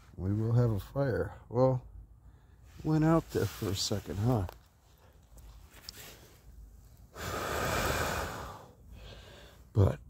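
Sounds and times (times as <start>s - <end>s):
person blowing on embers: 7.1s - 9.4s.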